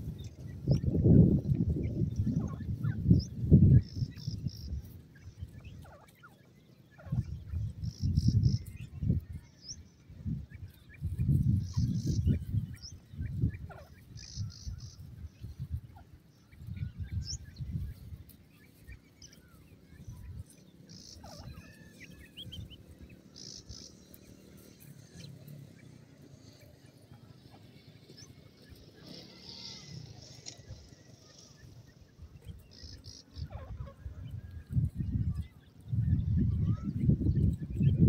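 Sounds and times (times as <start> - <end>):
chicks peeping: 0.0 - 38.0.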